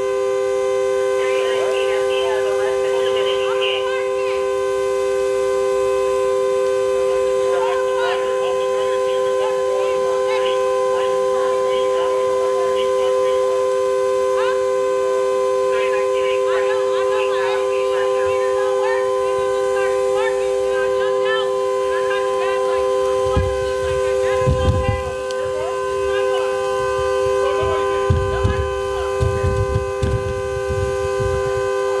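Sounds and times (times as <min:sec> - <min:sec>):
car horn sounding continuously: 0:00.0 - 0:32.0.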